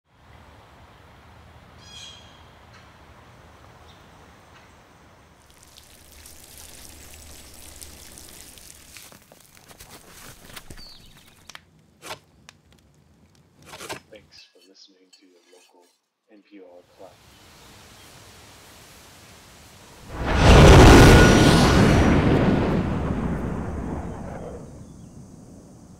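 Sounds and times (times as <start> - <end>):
bird call: 1.8 - 2.5
water pouring and splashing: 5.4 - 10.8.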